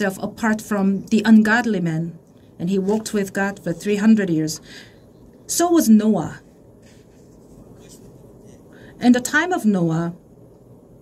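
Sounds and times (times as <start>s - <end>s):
low steady room hum: 0.0s - 11.0s
faint soft rustles: 6.3s - 8.6s.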